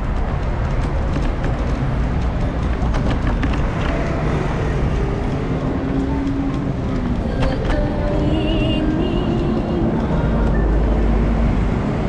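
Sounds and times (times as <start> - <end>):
city street traffic rumble: 0.0 - 12.0
humming tone: 3.7 - 12.0.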